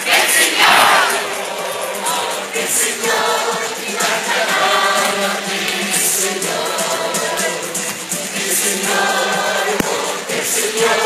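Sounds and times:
crowd singing together: 0:00.0 - 0:11.0
loud music: 0:00.0 - 0:11.0.

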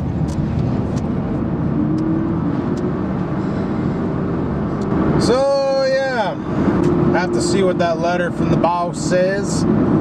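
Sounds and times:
car engine and tyre noise: 0:00.0 - 0:10.0.

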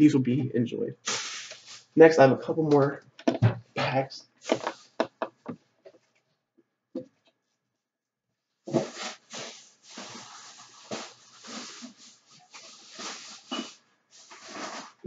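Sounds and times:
plastic bags rustling: 0:08.7 - 0:15.0.

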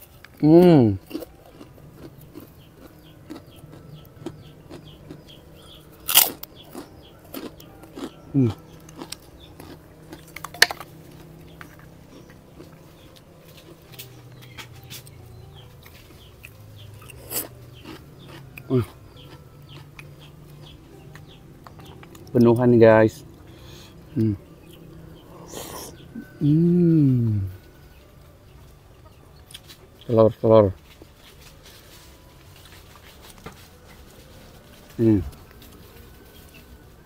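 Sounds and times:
close chewing: 0:00.0 - 0:37.0
sharp crunches of cracker: 0:06.0 - 0:10.9, 0:17.0 - 0:19.8.

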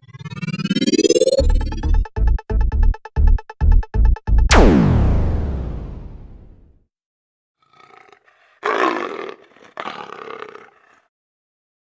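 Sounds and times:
big cat growl: 0:07.6 - 0:11.1
big cat roars: 0:07.6 - 0:11.1.

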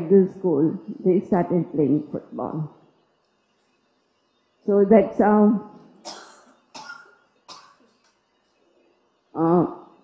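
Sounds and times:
short coughs: 0:06.0 - 0:07.9.

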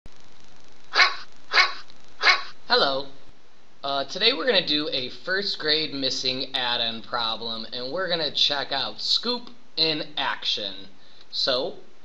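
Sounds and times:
steady background hiss: 0:00.1 - 0:12.0
dog barking: 0:00.9 - 0:02.6.

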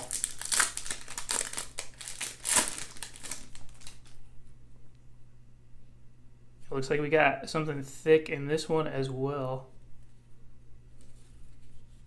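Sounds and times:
plastic wrapper tearing and crinkling: 0:00.0 - 0:04.2.

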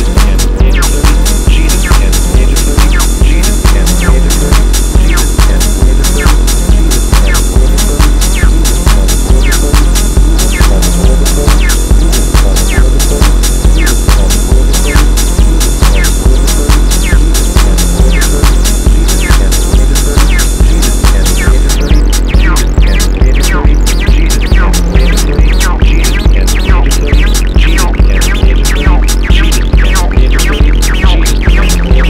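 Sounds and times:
heavy bass: 0:00.0 - 0:32.0
hi-hats: 0:00.0 - 0:32.0
kick drum: 0:00.0 - 0:32.0
squelchy acid synth notes: 0:00.0 - 0:32.0.

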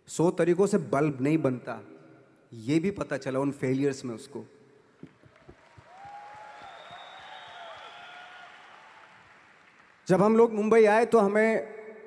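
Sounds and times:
audience applause: 0:05.1 - 0:10.2.

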